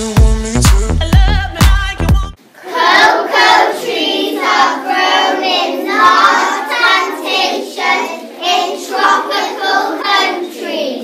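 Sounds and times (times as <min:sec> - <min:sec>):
young children singing: 0:02.4 - 0:11.0.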